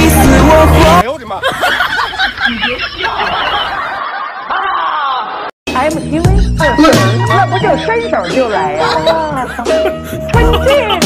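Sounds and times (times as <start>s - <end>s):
person laughing: 1.3s - 5.5s, 7.2s - 11.0s.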